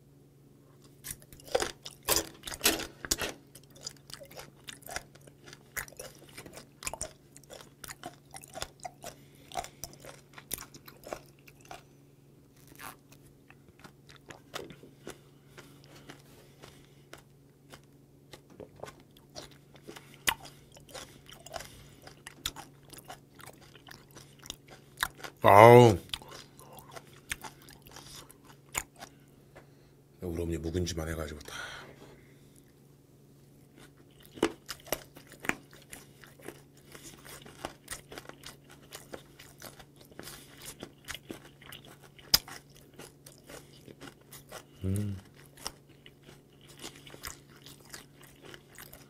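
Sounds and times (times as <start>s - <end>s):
faint low hum: 0.0s - 49.0s
chewing with wet crunches: 0.8s - 29.3s, 33.5s - 49.0s.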